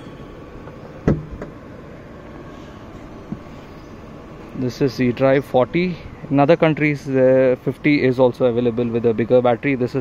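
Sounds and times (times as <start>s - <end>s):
tailgate latch clunk: 0.6s - 1.6s.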